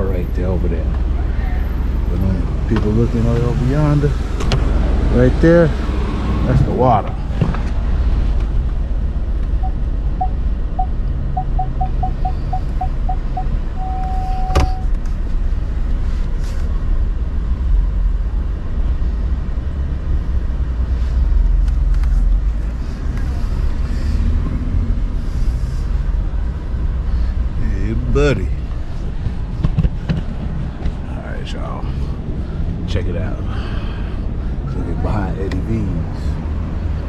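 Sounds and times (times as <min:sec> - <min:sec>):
parking sensor beeps: 0:09.6 - 0:14.9.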